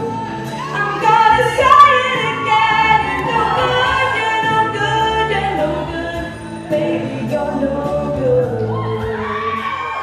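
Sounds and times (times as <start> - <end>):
musical accompaniment: 0.0 - 10.0
woman singing into a microphone: 0.0 - 10.0.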